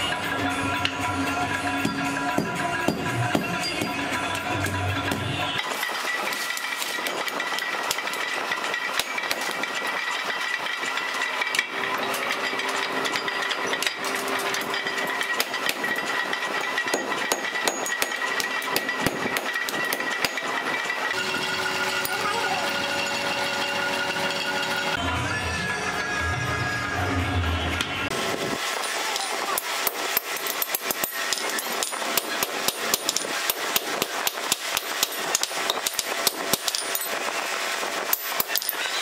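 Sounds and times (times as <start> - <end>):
steady ringing tone: 0.0 - 25.0
hammer striking metal on anvil: 0.8 - 25.0, 28.8 - 37.2.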